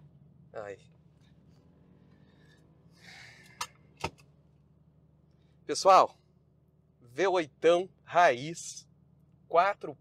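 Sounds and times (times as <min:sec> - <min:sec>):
low hum inside car cabin: 0:00.0 - 0:10.0
sharp click of car controls: 0:03.4 - 0:04.3.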